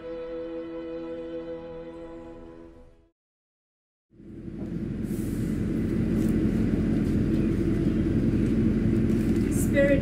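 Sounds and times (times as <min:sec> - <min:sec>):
low outdoor rumble: 0:04.2 - 0:10.0.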